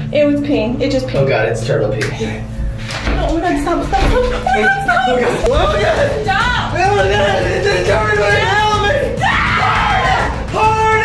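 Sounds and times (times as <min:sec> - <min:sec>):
woman screaming: 0:09.2 - 0:11.0.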